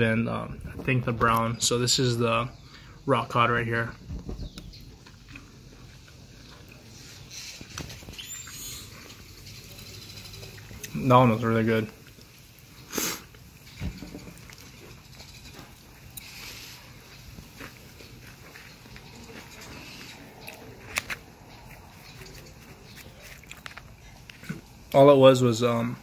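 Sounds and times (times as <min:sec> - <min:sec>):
person chewing food: 0:04.7 - 0:11.0, 0:12.0 - 0:25.0.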